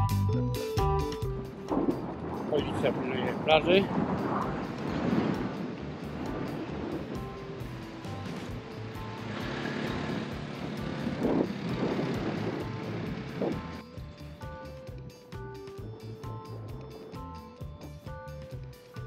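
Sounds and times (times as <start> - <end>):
background music: 0.0 - 19.0
surf: 1.2 - 13.7
wind buffeting microphone: 1.4 - 13.8.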